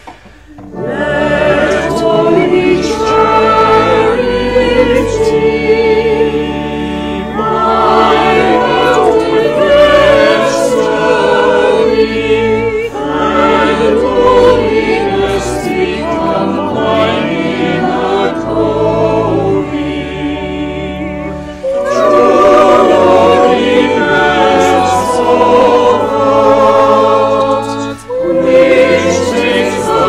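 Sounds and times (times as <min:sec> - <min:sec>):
choir singing: 0:00.5 - 0:30.0.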